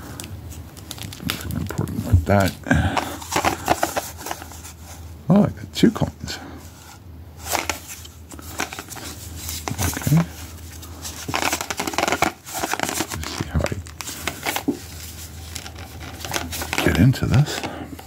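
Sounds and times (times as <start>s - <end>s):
cardboard rustling and scraping: 0.4s - 5.1s, 6.6s - 18.0s
cardboard tearing: 8.6s - 17.5s.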